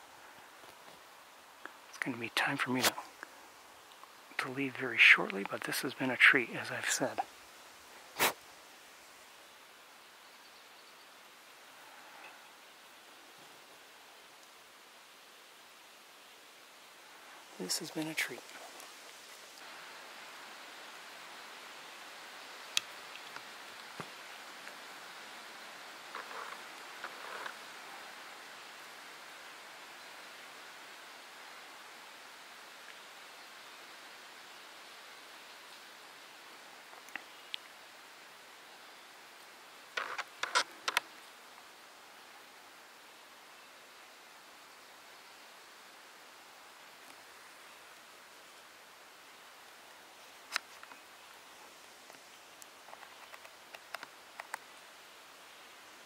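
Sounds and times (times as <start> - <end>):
faint woodland background hiss: 0.0 - 56.0.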